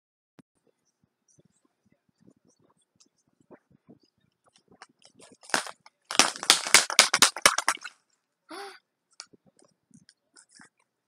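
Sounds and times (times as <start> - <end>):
plastic toy crackling and clicking: 5.0 - 7.8.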